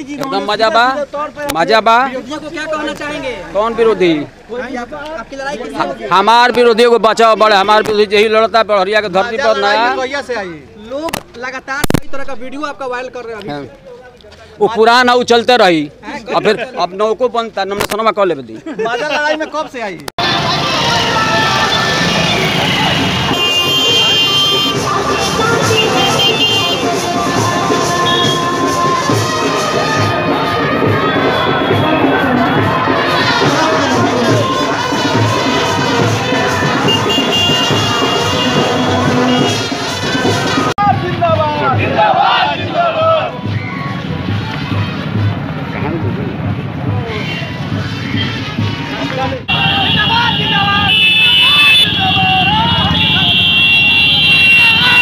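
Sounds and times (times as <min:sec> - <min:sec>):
motorcycle engines: 0:00.0 - 0:07.7, 0:20.1 - 0:55.0
street crowd noise: 0:00.0 - 0:55.0
traffic: 0:00.0 - 0:55.0
men shouting and cheering: 0:18.5 - 0:55.0
held horn-like tones: 0:20.2 - 0:40.7, 0:49.5 - 0:55.0
music playing: 0:20.2 - 0:53.5.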